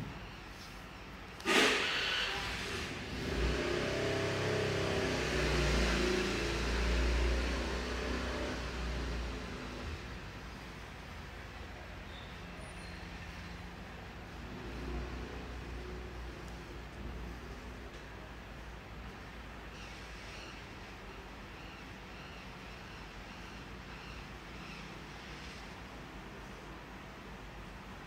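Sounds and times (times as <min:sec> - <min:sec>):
vehicle engine rumbling past: 0:01.5 - 0:20.4.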